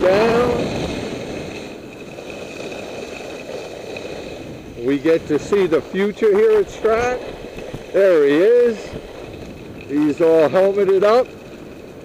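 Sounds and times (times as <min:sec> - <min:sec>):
skis sliding over snow: 0:00.0 - 0:12.0
wind on microphone: 0:00.0 - 0:12.0.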